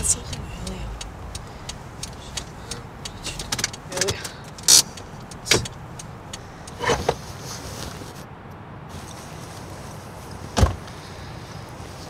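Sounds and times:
light clicks: 0:00.0 - 0:06.8
car engine idling: 0:00.0 - 0:07.4.

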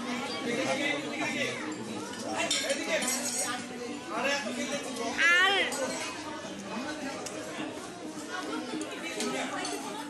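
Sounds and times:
indistinct chatter of diners: 0:00.0 - 0:10.0.

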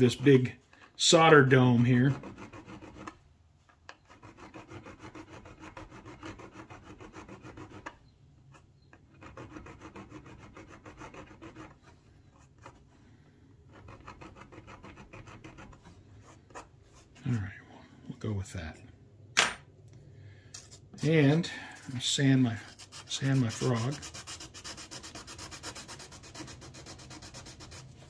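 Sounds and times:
hand file scraping metal: 0:01.7 - 0:03.2, 0:03.9 - 0:12.0, 0:13.7 - 0:15.8, 0:20.6 - 0:28.0.

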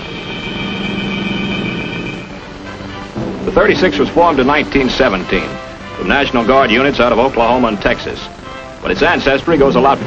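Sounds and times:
sustained orchestral chord: 0:00.0 - 0:07.8.

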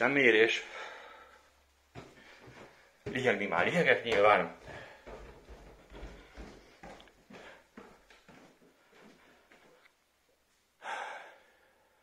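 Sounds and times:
footsteps on wooden stairs: 0:01.9 - 0:09.8
loud breath through mask: 0:10.8 - 0:12.0.

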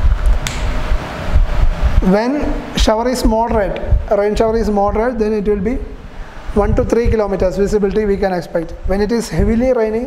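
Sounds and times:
low rumble: 0:00.0 - 0:08.2
faint steady hum: 0:00.0 - 0:10.0.

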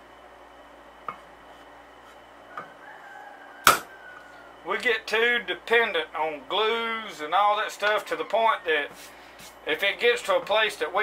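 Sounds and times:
small hammer striking metal: 0:03.6 - 0:03.9.

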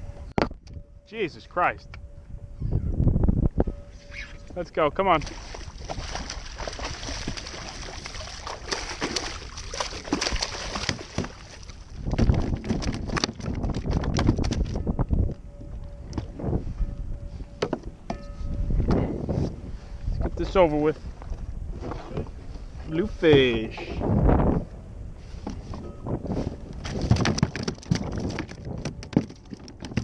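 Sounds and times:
fish flopping on deck: 0:05.2 - 0:14.8, 0:26.8 - 0:30.0
fish splashing and thrashing: 0:05.2 - 0:15.0, 0:26.5 - 0:30.0.

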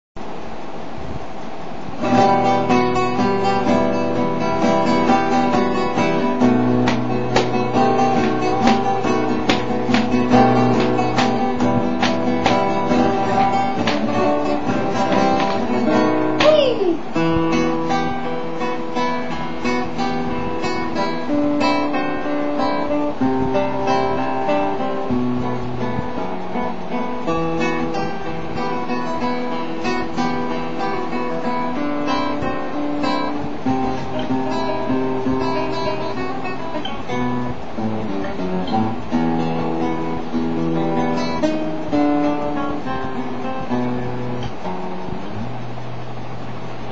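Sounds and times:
flamenco classical guitar: 0:01.9 - 0:46.9.

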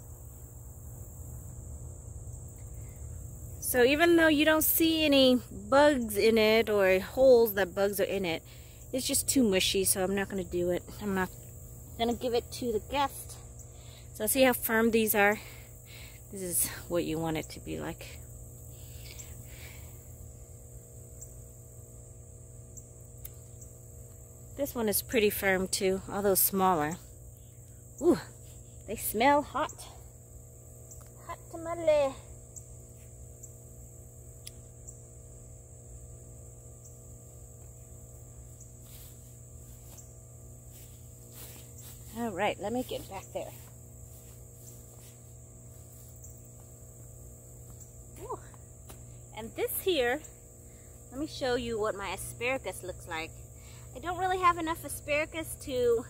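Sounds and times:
high-pitched insect chorus: 0:00.0 - 0:56.0
low background hum: 0:00.0 - 0:56.0
soft rustle: 0:38.6 - 0:46.7.

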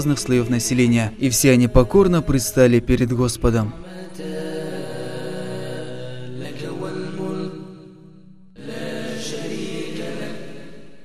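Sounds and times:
religious vocal chant: 0:00.0 - 0:11.0.

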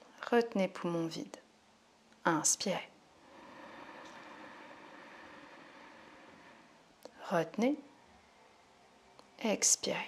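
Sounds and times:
person inhaling through nose: 0:03.1 - 0:07.2.

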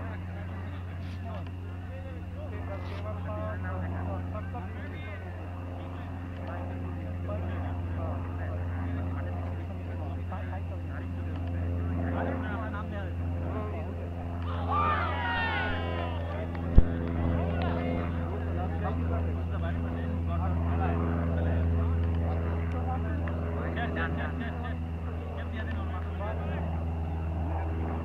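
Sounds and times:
faint voices talking: 0:00.0 - 0:28.0
low mechanical drone: 0:00.0 - 0:28.0.

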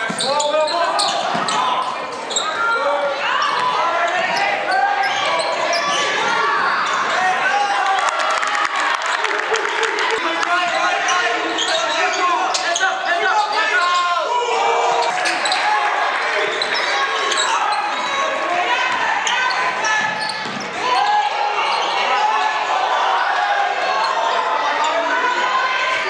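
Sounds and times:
people shouting: 0:02.4 - 0:26.0.

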